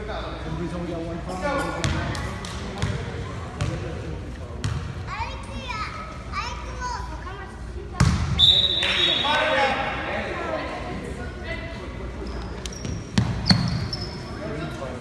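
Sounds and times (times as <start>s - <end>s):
voices of players and spectators: 0.0s - 15.0s
short high referee's whistle: 8.4s - 9.4s.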